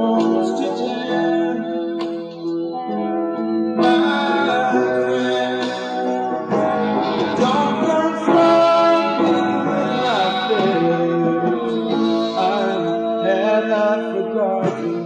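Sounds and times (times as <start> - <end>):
guitar: 0.0 - 15.0
person singing: 0.0 - 15.0.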